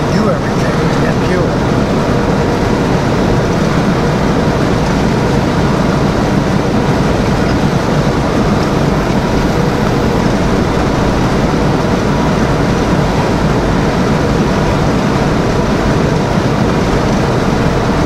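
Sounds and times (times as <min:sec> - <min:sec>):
diesel engine drone: 0:00.0 - 0:18.0.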